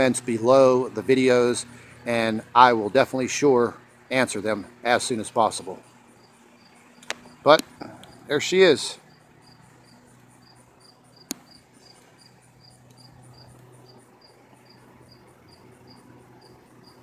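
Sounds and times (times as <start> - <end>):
cricket chirping: 0.0 - 17.0.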